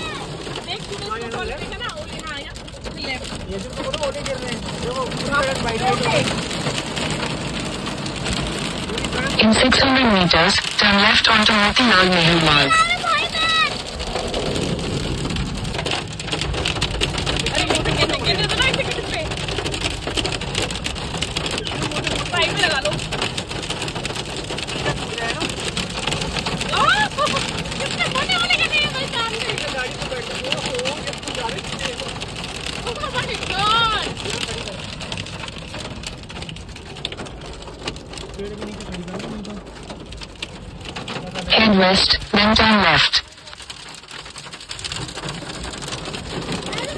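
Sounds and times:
hail and rain on car roof: 0:00.0 - 0:46.9
voices calling out: 0:09.0 - 0:14.8, 0:41.5 - 0:43.3.

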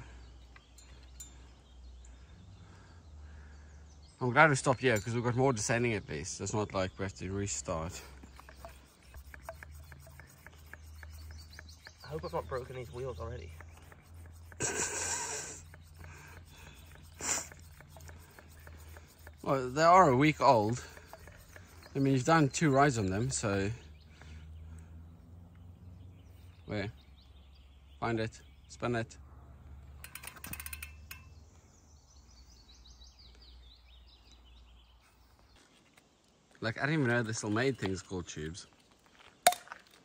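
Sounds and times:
songbird singing: 0:00.0 - 0:40.0
short sharp sniff: 0:14.7 - 0:19.2
bicycle freehub ticking: 0:30.0 - 0:31.3.

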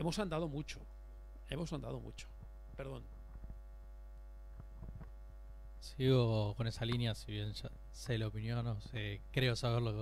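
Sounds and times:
electrical mains hum: 0:00.0 - 0:10.0
microphone being handled: 0:02.3 - 0:03.7, 0:04.5 - 0:05.4, 0:08.7 - 0:09.1.

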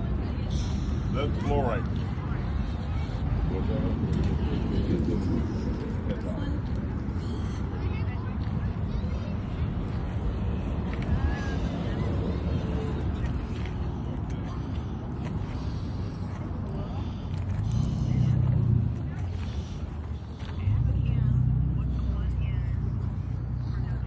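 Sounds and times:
people talking: 0:00.0 - 0:24.0
steady low rumble: 0:00.0 - 0:24.0.

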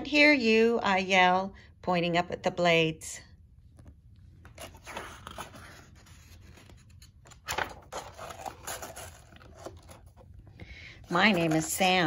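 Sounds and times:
low steady hum: 0:00.0 - 0:12.0
paper pages rustling: 0:03.7 - 0:12.0.

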